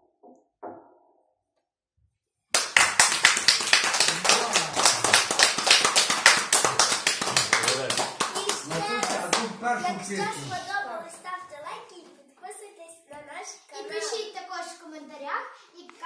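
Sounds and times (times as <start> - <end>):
audience applauding: 2.5 - 10.7
children's voices: 7.2 - 16.0.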